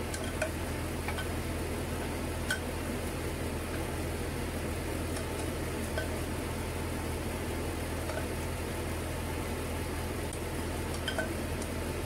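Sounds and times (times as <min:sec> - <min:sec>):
kitchen equipment hum and hiss: 0:00.0 - 0:12.0.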